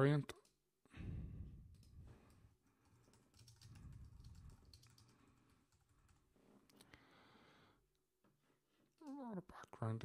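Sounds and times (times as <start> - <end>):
faint keyboard typing: 1.6 - 6.9.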